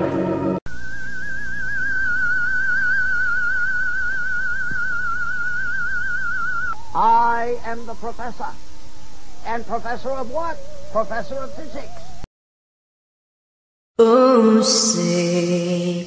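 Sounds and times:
high electronic tone with vibrato: 0:00.0 - 0:12.2
wavering sliding pitched sounds: 0:00.7 - 0:12.3.

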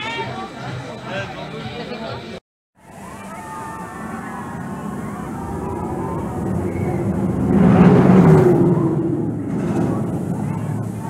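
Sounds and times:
roller coaster rushing past: 0:02.8 - 0:11.0.

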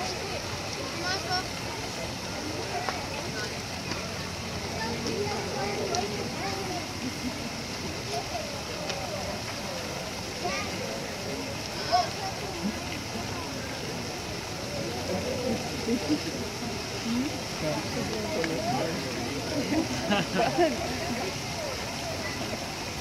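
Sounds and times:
chatter of many onlookers: 0:00.0 - 0:23.0.

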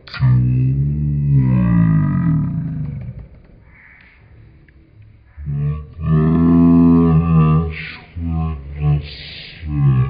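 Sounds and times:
low hum-like tone falling in pitch: 0:00.7 - 0:03.3, 0:05.3 - 0:10.0
faint clicks: 0:02.5 - 0:05.2.

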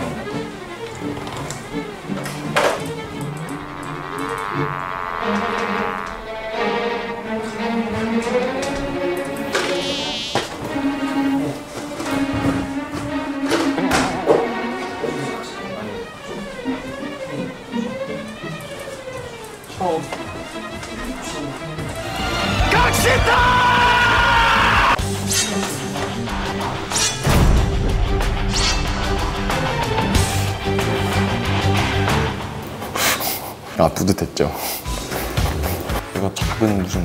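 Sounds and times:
background music: 0:00.0 - 0:37.0
large fly buzzing: 0:02.8 - 0:07.7, 0:09.4 - 0:10.8.

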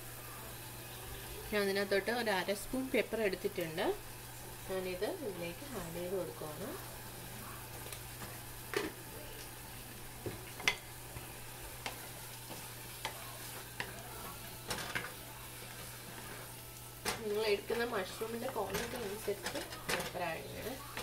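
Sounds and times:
food sizzling in a saucepan: 0:00.0 - 0:21.0
spatula scraping a pan: 0:11.6 - 0:21.0.

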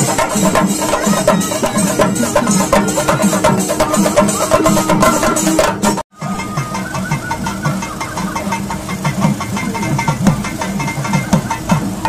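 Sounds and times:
barrel drums played fast: 0:00.0 - 0:12.0.

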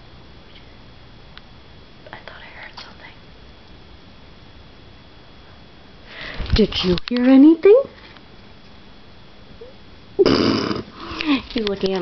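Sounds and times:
soft whispering: 0:02.0 - 0:03.2.

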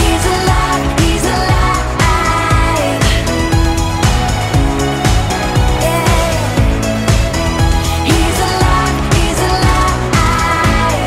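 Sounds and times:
upbeat pop children's song: 0:00.0 - 0:11.0.

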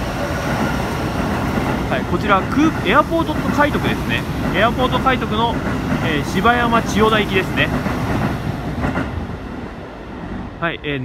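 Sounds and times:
train passing through station: 0:00.0 - 0:11.0.

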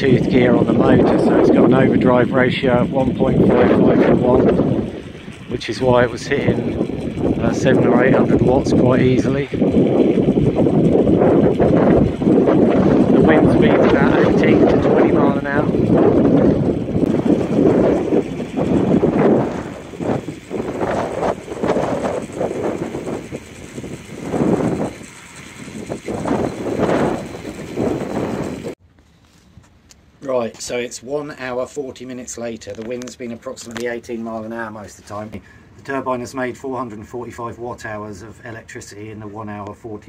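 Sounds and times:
gusty wind buffeting microphone: 0:00.0 - 0:28.8.

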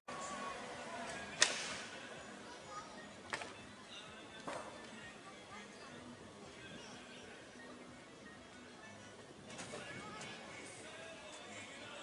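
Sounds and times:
faint outdoor background noise: 0:00.1 - 0:12.0.

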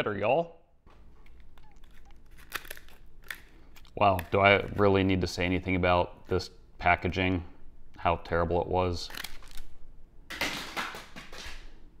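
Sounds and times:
plastic packaging crinkling: 0:00.9 - 0:04.9.

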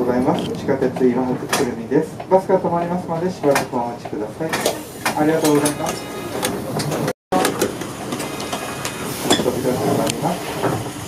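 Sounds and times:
person speaking: 0:00.0 - 0:06.4.

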